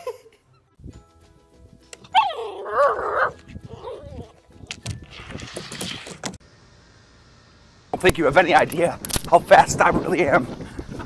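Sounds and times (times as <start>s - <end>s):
puppy whining: 2.0s - 4.4s.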